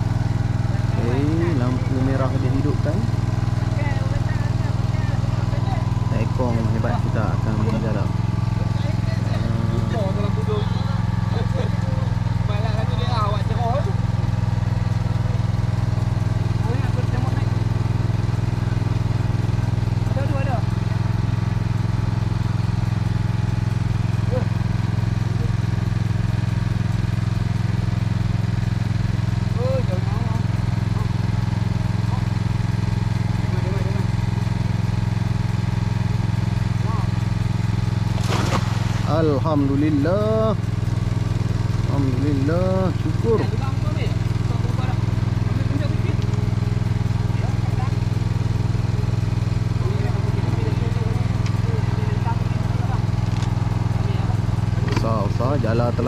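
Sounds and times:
boat engine droning: 0.0 - 56.0.

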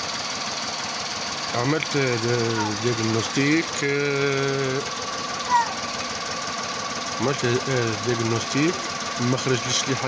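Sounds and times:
high engine chirp: 0.0 - 9.9
car engine idling: 0.0 - 10.0.

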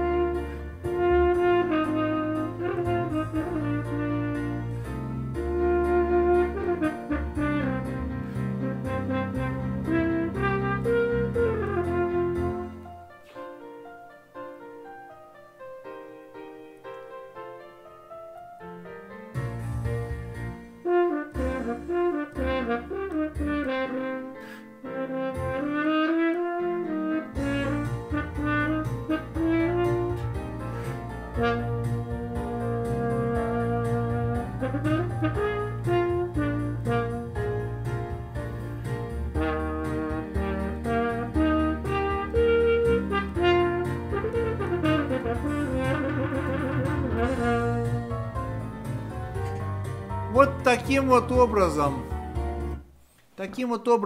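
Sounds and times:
muted french horn melody: 0.0 - 13.0, 20.8 - 52.8
backing track bass line: 27.4 - 52.8.

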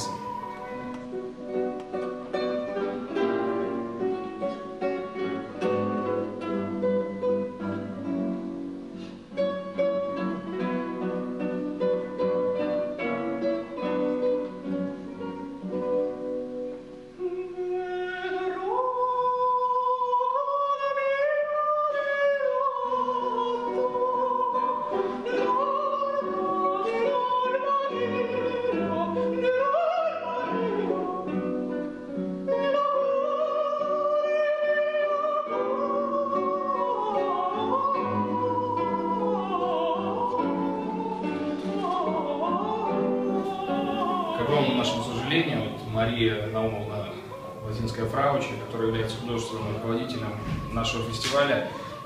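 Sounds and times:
countertenor singing high note: 0.0 - 1.0
classical guitars playing: 0.0 - 52.0.

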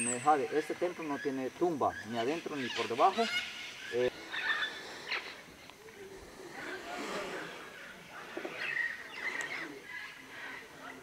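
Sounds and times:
faint indistinct talking: 5.6 - 11.0.

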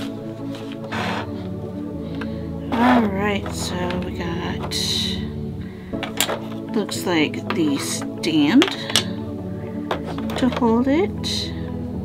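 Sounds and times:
background music held notes: 0.0 - 12.0.

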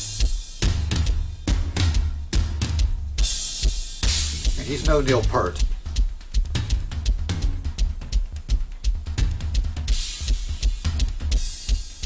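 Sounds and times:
rock drum groove: 0.0 - 12.0.

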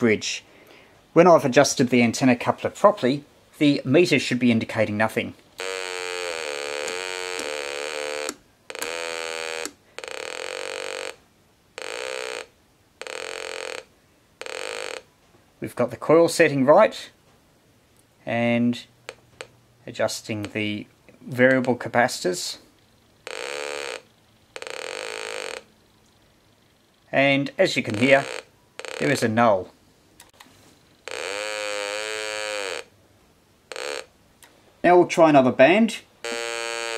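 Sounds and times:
buzzy oscillator tone: 5.6 - 11.2, 11.8 - 15.1, 22.9 - 25.8, 26.5 - 29.4, 31.0 - 32.9, 33.7 - 34.1, 36.2 - 36.9.

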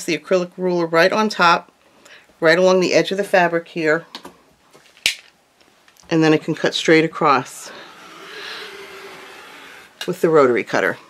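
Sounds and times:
faint handling noise: 4.1 - 6.2.

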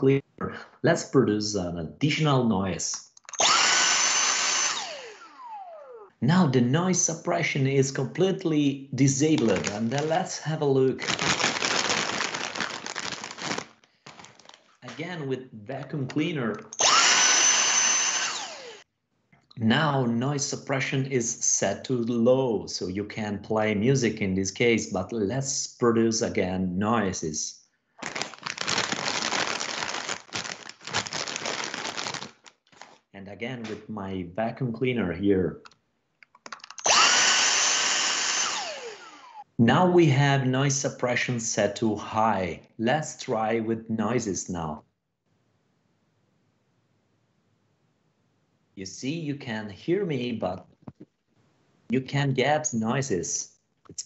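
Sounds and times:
handheld vacuum cleaner motor whine: 3.4 - 6.1, 16.7 - 18.8, 36.8 - 39.4
plastic chip bag crinkling: 9.2 - 15.1, 28.0 - 33.1.

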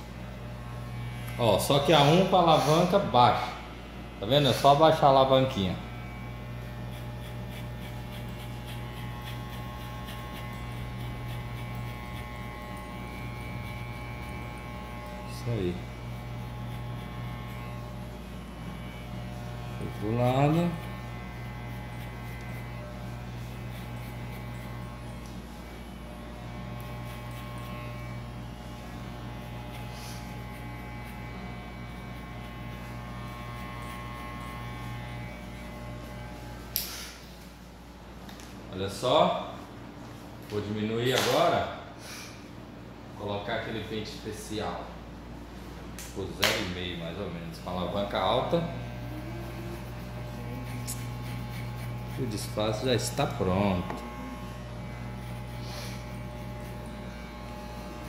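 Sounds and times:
electric hair clipper humming: 0.0 - 38.6, 45.9 - 58.0.

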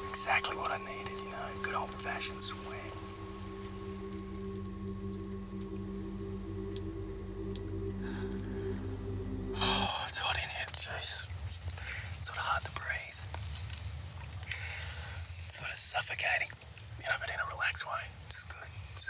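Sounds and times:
low steady drone: 0.0 - 11.4
breathy whispering: 0.0 - 13.3, 14.5 - 19.0.

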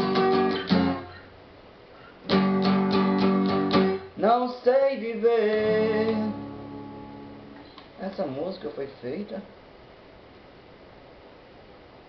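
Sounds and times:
acoustic guitar chord ringing: 0.0 - 1.3, 2.2 - 7.7
person singing: 4.2 - 6.7.

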